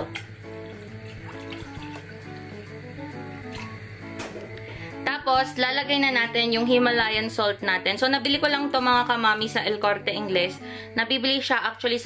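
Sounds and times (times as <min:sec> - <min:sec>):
water pouring into saucepan: 0:00.0 - 0:04.1
background music: 0:00.0 - 0:12.0.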